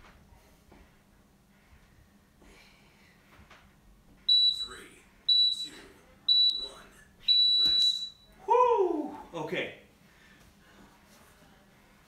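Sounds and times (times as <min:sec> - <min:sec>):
short high timer beeps: 0:04.3 - 0:08.3
long timer beep: 0:04.3 - 0:08.4.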